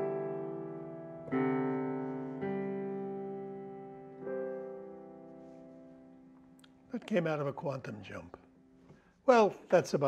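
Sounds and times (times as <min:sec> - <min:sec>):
digital piano chords: 0:00.0 - 0:08.9.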